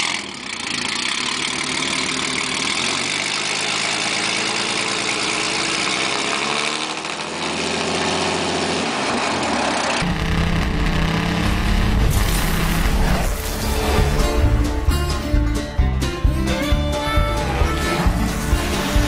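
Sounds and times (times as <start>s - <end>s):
car engine idling: 0.0s - 6.4s, 7.0s - 19.0s
deeper engine rumble: 9.9s - 19.0s.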